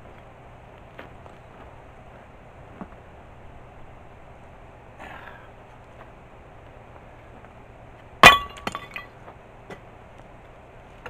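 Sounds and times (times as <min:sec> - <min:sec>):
stone knocks: 0:08.2 - 0:09.1.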